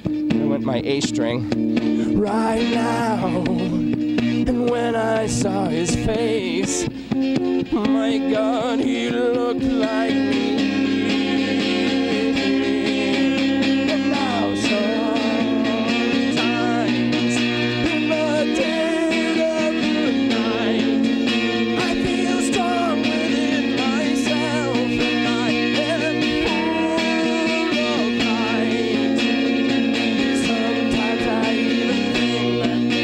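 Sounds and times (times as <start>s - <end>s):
acoustic guitar: 0.0s - 33.0s
man singing: 2.0s - 6.9s, 7.7s - 33.0s.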